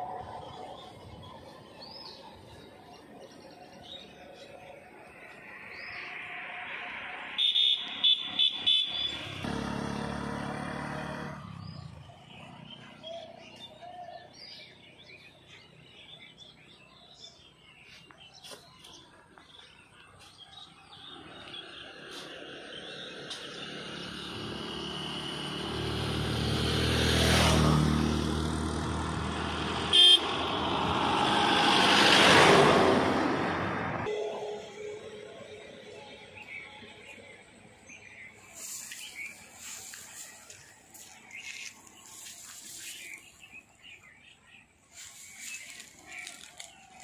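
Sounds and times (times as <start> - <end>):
vehicle horn beeping: 7.4 - 9.4, 29.9 - 30.4, 34.1 - 36.1
engine rumble passing: 9.0 - 16.5, 20.9 - 44.4.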